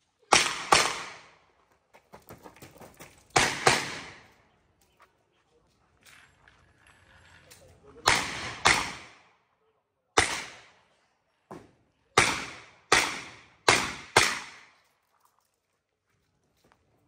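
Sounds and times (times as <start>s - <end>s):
gunshots with echo: 0.3s - 1.4s, 3.3s - 4.3s, 8.0s - 9.3s, 10.2s - 10.8s, 12.2s - 14.8s.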